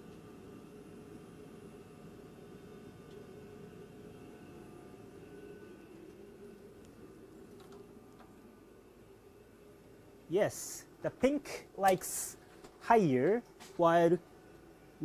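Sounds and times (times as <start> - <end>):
ventilation fans humming: 0.0 - 15.0.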